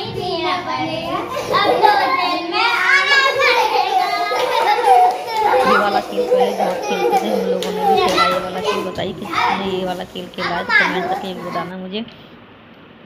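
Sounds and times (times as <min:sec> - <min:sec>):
children talking and calling out: 0:00.0 - 0:11.9
children laughing: 0:01.0 - 0:11.8.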